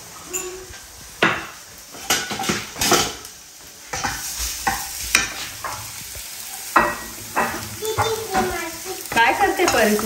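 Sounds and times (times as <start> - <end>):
garlic sizzling in oil: 0.0 - 10.0
wooden spatula scraping pan: 3.8 - 10.0.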